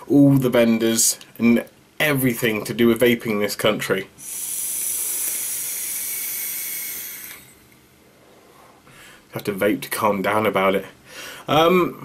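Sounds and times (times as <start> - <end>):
vape coil sizzling hiss: 4.2 - 7.8.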